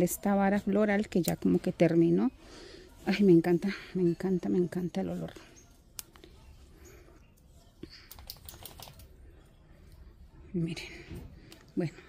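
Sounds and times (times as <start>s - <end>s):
light clicks and crackles of soil: 0.0s - 1.9s, 4.9s - 10.1s, 11.1s - 12.0s.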